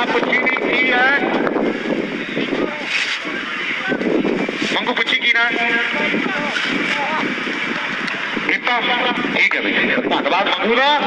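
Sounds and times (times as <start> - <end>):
murmur of distant voices: 0.0 - 11.0
outdoor background noise: 0.0 - 11.0.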